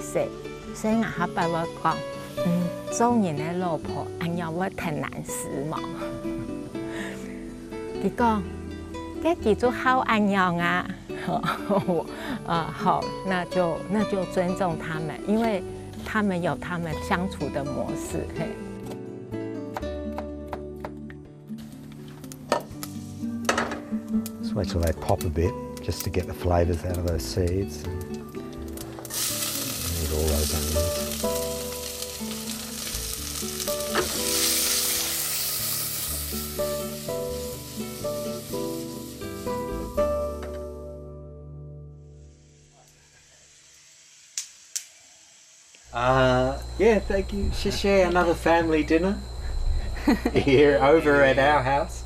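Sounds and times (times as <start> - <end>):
wood fire hissing: 0.0 - 18.8, 21.5 - 41.1, 41.8 - 52.0
fire crackling pops: 19.8 - 40.8, 42.2 - 48.5.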